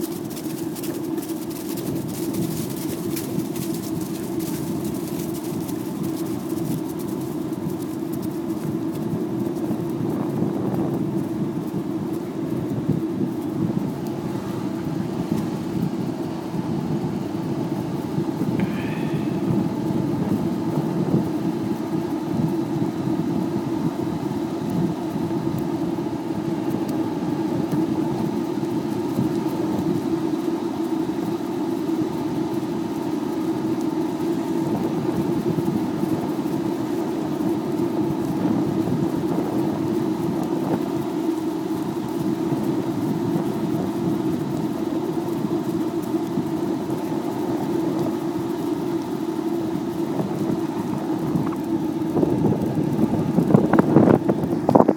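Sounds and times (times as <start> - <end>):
skateboard wheels rolling on pavement: 0.0 - 54.9.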